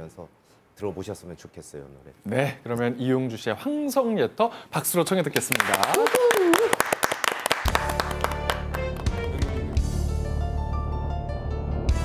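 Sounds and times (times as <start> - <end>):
applause: 5.4 - 10.0
background music with low bass: 7.7 - 12.0.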